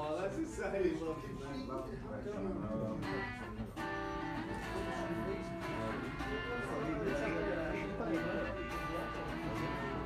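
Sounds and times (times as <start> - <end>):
voices: 0.4 - 10.0
guitar chords: 3.0 - 10.0.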